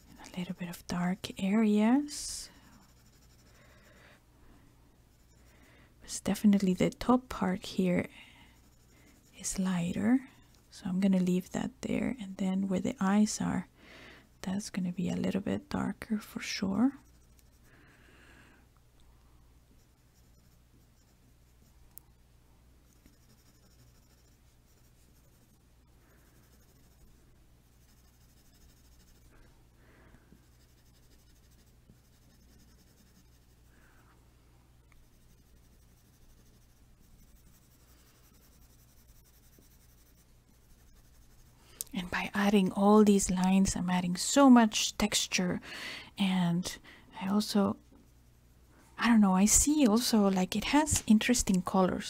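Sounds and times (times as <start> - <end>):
pencil scratching on paper: 0.0 - 3.9, 5.1 - 5.5, 6.1 - 10.5, 16.9 - 17.7, 19.8 - 21.7, 22.9 - 29.4, 30.4 - 33.7, 34.9 - 42.8.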